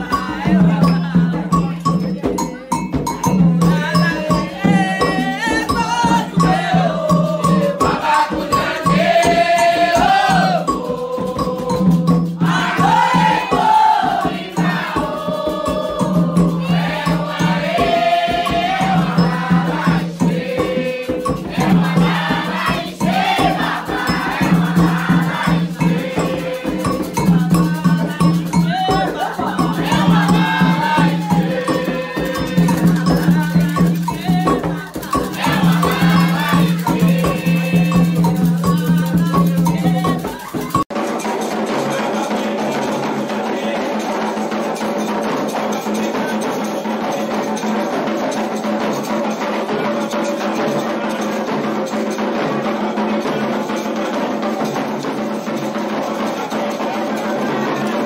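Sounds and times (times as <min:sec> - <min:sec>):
woman singing: 0:00.0 - 0:02.7, 0:03.6 - 0:11.8, 0:12.4 - 0:40.8
handheld metal bell ringing: 0:00.0 - 0:41.2
chanting: 0:00.0 - 0:58.0
drum beats: 0:00.0 - 0:58.0.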